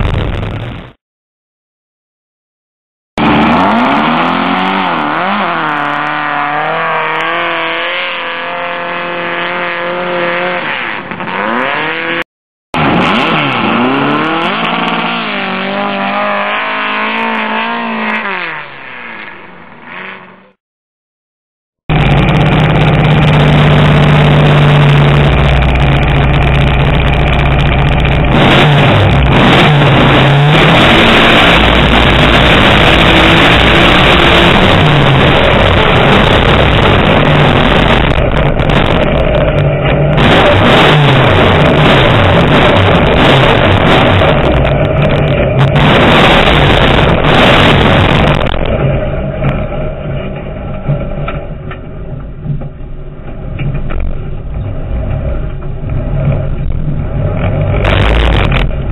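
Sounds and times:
dune buggy engine revving: 0:03.2 - 0:12.2, 0:12.8 - 0:20.6, 0:21.9 - 0:52.6, 0:53.3 - 0:58.9
engine at full throttle: 0:03.2 - 0:12.2, 0:12.8 - 0:20.6, 0:21.9 - 0:58.9.

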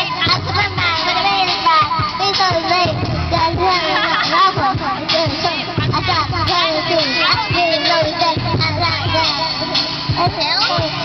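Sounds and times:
children singing karaoke: 0:00.0 - 0:11.0
music backing track: 0:00.0 - 0:11.0.

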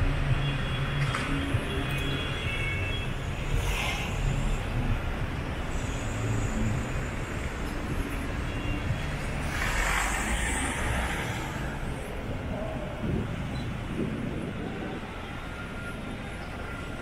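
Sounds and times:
traffic engine rumble: 0:00.0 - 0:17.0.

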